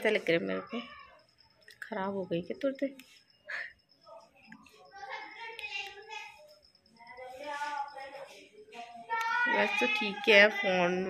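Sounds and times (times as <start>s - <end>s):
woman speaking: 0.0s - 1.0s, 1.8s - 3.7s, 9.5s - 11.0s.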